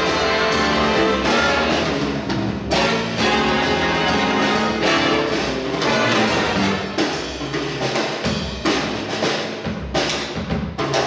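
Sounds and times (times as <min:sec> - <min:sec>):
big band jazz: 0:00.0 - 0:11.0.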